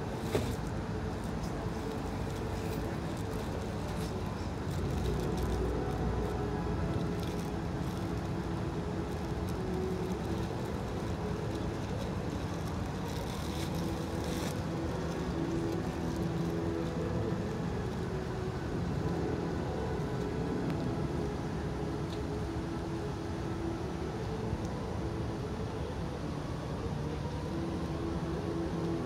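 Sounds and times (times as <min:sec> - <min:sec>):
distant road traffic rumble: 0:00.0 - 0:29.0.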